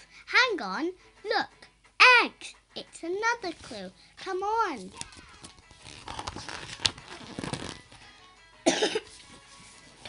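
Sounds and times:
paper page turning: 4.8 - 8.0
loud cough: 8.6 - 9.1.

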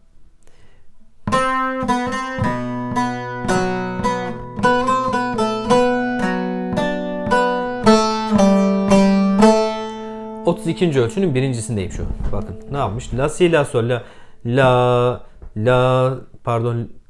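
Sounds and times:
plucked lute melody: 1.2 - 13.9
low strings ringing: 1.4 - 14.0.

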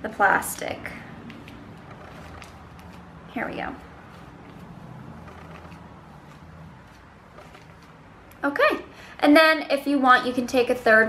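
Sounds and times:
road traffic rumble: 0.0 - 9.2.

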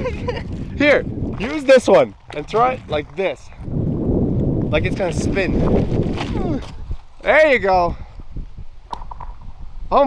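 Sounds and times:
stones skidding on ice: 1.2 - 3.5, 5.0 - 7.3.

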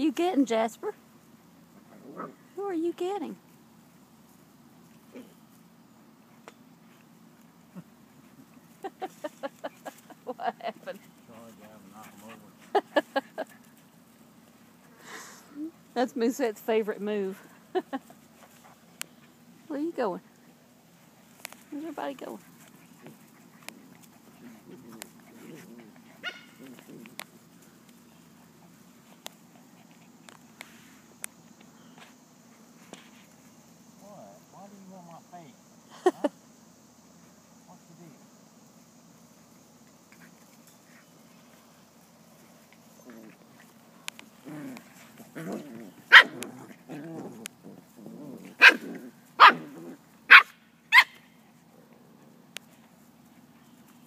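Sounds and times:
puppies growling: 1.7 - 2.5, 22.4 - 30.6, 42.4 - 50.2
puppy yelp: 26.2 - 26.6, 50.3 - 51.2
puppy barks: 26.2 - 26.7, 46.1 - 46.6, 48.6 - 51.2.

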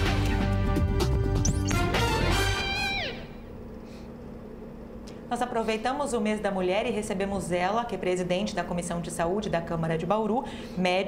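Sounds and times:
tv jingle falling sweep: 1.4 - 3.2
low studio hum: 1.5 - 11.0.

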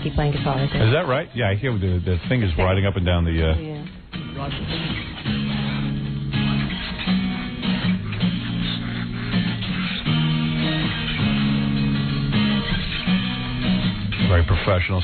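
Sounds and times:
rock song with guitars: 0.0 - 15.0.

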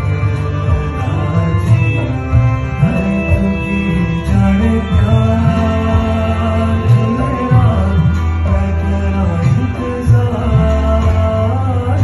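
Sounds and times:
man singing into a microphone: 0.0 - 12.0
musical accompaniment: 0.0 - 12.0.

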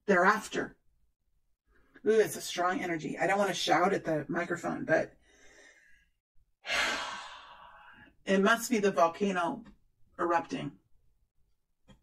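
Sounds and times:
faint breath: 5.2 - 8.1
person sighing loudly: 6.6 - 8.0.

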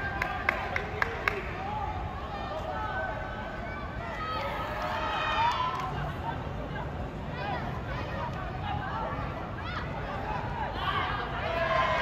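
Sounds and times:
voices shouting and calling out: 0.0 - 12.0.

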